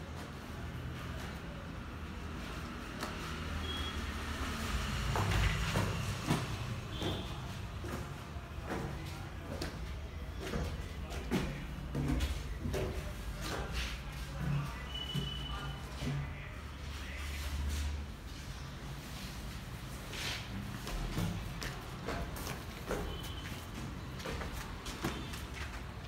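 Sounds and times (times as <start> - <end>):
footsteps on concrete stairs: 5.1 - 15.4, 20.6 - 26.0.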